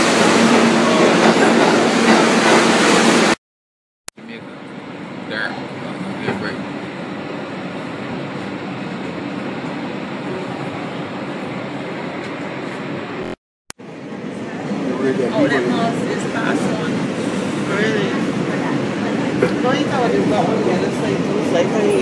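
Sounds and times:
subway train rumbling: 0.0s - 3.4s, 4.2s - 22.0s.

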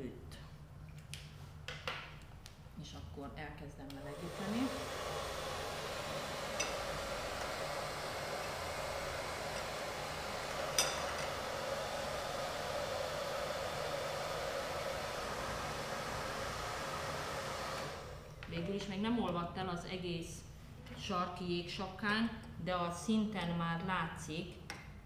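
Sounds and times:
hair dryer running: 3.9s - 18.4s.

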